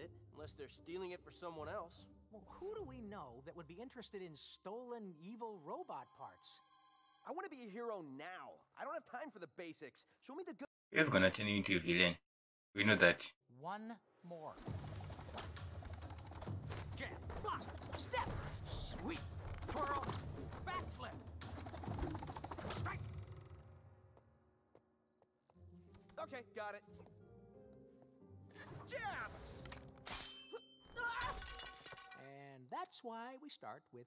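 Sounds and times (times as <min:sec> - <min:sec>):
background score music: 0:00.0 - 0:09.0, 0:14.0 - 0:24.8, 0:25.4 - 0:31.2.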